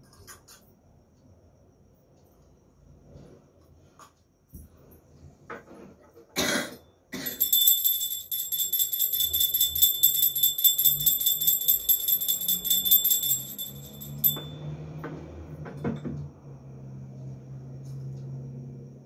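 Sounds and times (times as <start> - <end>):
handheld brass bell ringing: 7.2 - 14.9.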